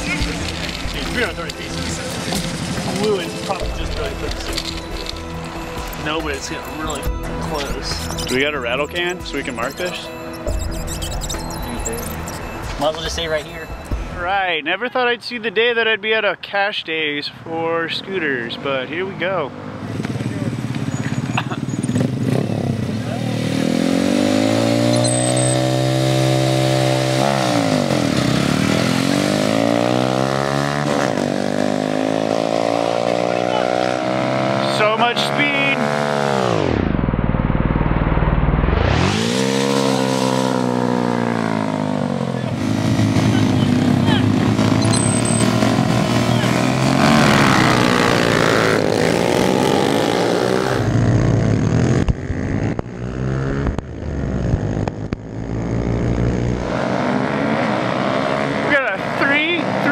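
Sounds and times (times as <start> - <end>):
mini-bike engines revving: 0.0 - 5.2, 19.8 - 36.9, 38.9 - 59.9.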